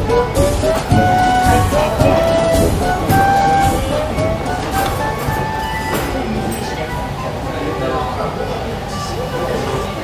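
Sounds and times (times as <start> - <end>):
low beat: 0.0 - 6.2
melody of sliding held notes: 0.0 - 6.4.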